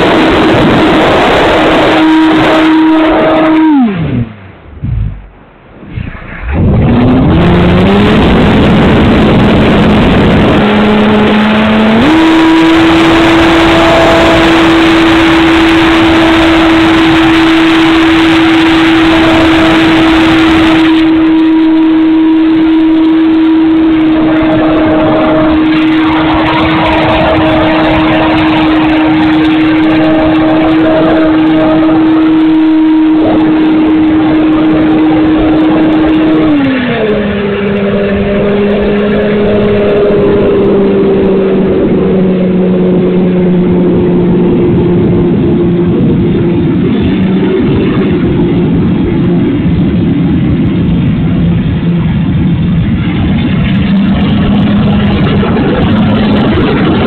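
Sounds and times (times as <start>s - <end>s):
electric motor and propeller whine: 0.0s - 5.4s, 6.5s - 57.0s
wind rush: 0.0s - 57.0s.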